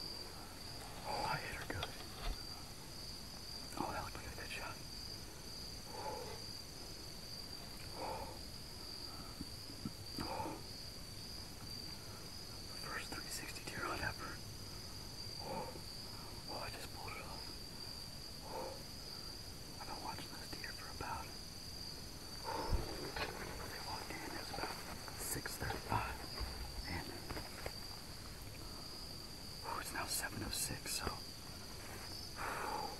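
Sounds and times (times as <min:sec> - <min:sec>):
crickets trilling: 0:00.0 - 0:32.9.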